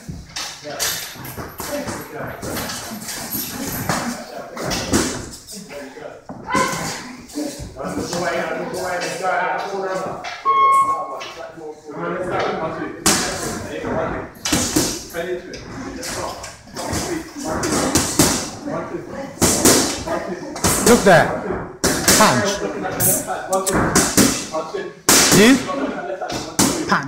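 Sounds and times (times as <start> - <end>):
voices in room: 0.0 - 27.0.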